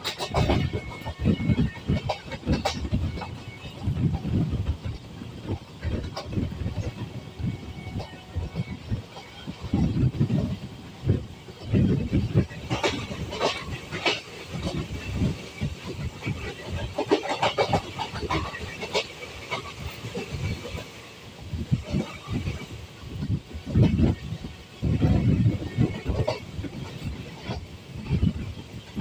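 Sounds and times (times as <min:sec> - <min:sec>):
passing train clatter: 0:00.0 - 0:29.0
train wheels clacking over rail joints: 0:00.0 - 0:29.0.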